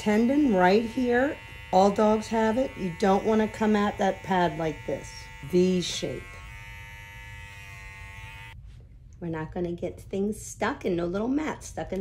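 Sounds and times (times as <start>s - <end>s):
dog-grooming clipper running: 0.0s - 8.6s.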